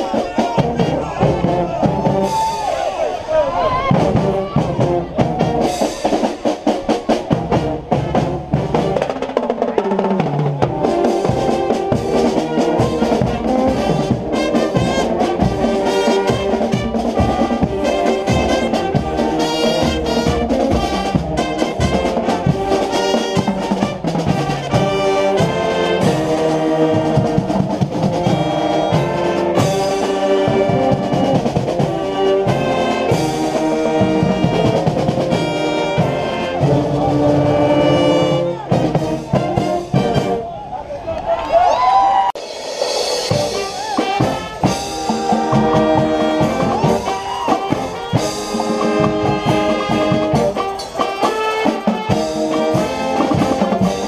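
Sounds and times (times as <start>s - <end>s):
marching drums beat: 0.0s - 2.6s, 3.8s - 40.4s, 42.4s - 54.0s
marching brass band playing: 0.0s - 40.8s, 42.4s - 54.0s.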